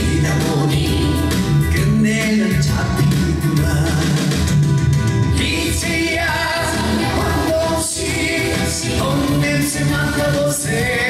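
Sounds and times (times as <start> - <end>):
man singing pop song: 0.0 - 4.6, 5.3 - 11.0
backing band track: 0.0 - 11.0.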